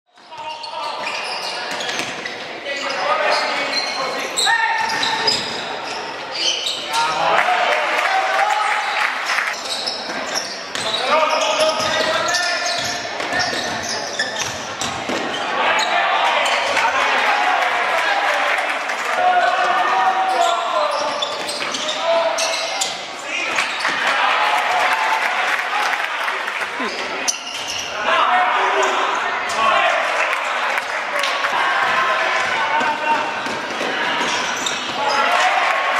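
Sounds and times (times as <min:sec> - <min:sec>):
people shouting: 0:31.1 - 0:34.3, 0:35.0 - 0:35.9.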